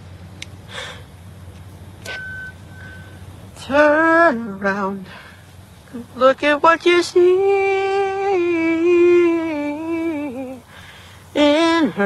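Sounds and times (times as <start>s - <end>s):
low hum: 0.0s - 12.0s
short steady beeps: 2.0s - 3.2s.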